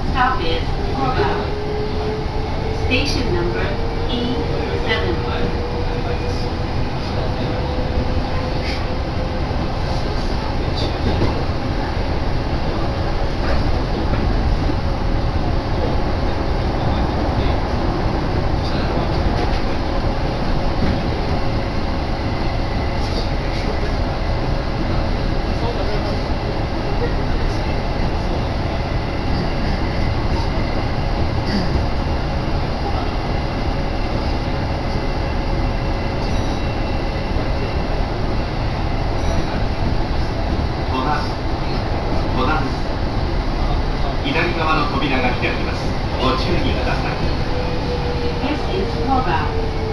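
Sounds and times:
train rumbling: 0:00.0 - 0:49.9.

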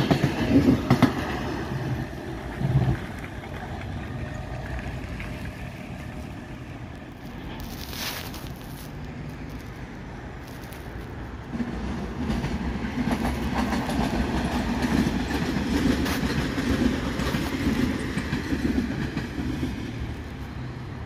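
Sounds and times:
wheels clattering over rails: 0:00.0 - 0:06.8
electric train passing: 0:00.0 - 0:21.0.

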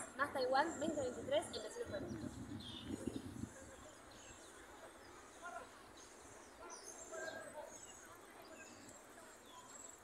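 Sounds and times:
small birds chirping: 0:00.4 - 0:10.0.

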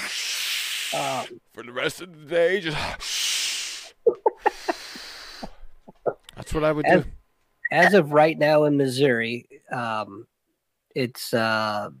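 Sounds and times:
hissing breath through mouth: 0:00.0 - 0:01.0
person chuckling: 0:04.0 - 0:06.5.

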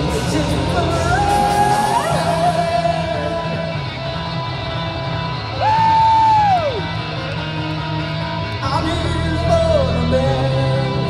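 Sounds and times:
electric bass guitar: 0:00.0 - 0:11.0
live rock band playing: 0:00.0 - 0:11.0.

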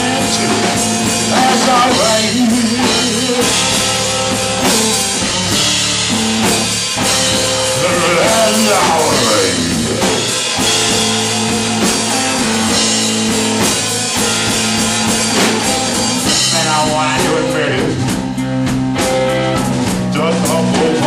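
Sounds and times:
drum kit: 0:00.0 - 0:21.0
electric guitar: 0:00.0 - 0:21.0.

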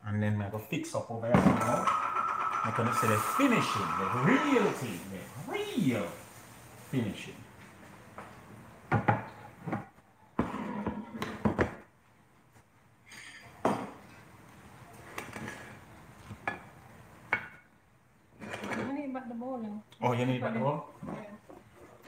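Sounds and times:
dishes knocking and clinking: 0:08.9 - 0:11.9, 0:13.1 - 0:14.1.

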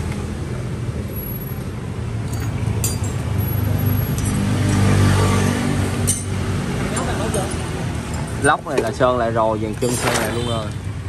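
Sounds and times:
metal clinking: 0:02.2 - 0:04.5, 0:06.0 - 0:08.9.

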